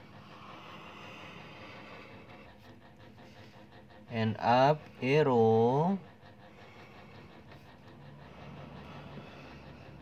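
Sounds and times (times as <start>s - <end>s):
low hum: 5.7s - 10.0s.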